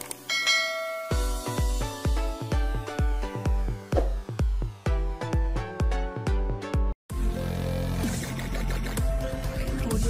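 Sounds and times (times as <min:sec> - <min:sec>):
notification bell ding: 0:00.3 - 0:01.6.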